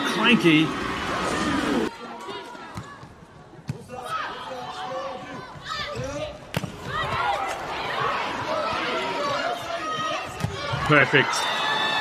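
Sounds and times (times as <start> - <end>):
crowd noise: 0.0 - 12.0
voices shouting: 6.8 - 12.0.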